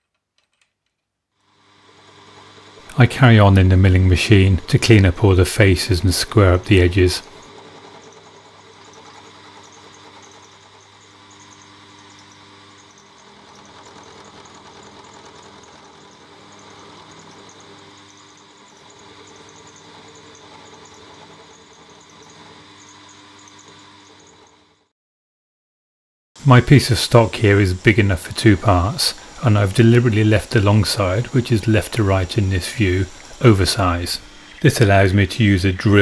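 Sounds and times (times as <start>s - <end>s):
milling machine cutting metal: 1.4s - 24.9s, 26.4s - 36.0s.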